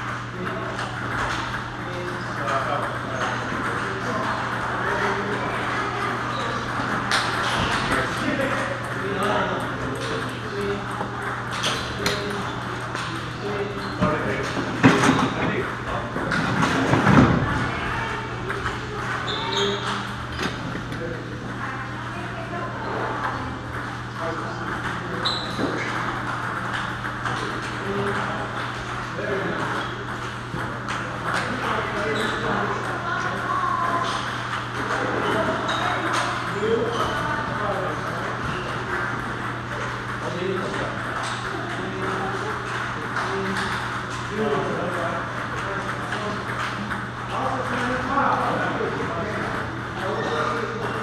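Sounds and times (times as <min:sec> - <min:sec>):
table tennis balls clicking: 0:00.0 - 0:17.7, 0:24.6 - 0:48.4
background chatter: 0:00.0 - 0:51.0
murmur of voices: 0:00.0 - 0:51.0.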